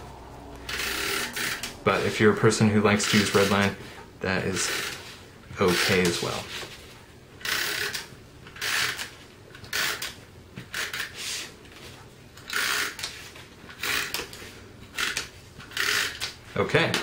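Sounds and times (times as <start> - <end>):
tape runner strokes on cardstock: 3.0 - 3.8, 4.6 - 6.8, 9.7 - 11.6.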